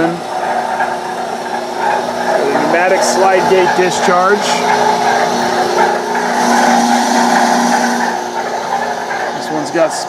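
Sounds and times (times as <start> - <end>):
mixer motor and gearbox humming: 0.0 - 10.0.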